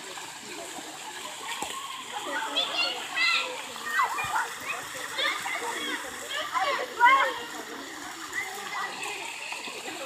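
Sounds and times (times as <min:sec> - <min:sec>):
water fountain spraying and splashing: 0:00.0 - 0:10.0
children calling out: 0:01.8 - 0:10.0.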